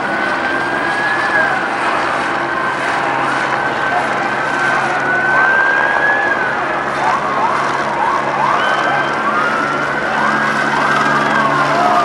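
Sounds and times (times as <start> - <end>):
engine and street noise: 0.0 - 12.0.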